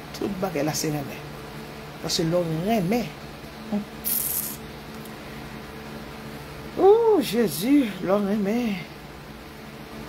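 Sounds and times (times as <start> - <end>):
faint steady hum: 0.0 - 10.0
brief high hiss: 4.0 - 4.6.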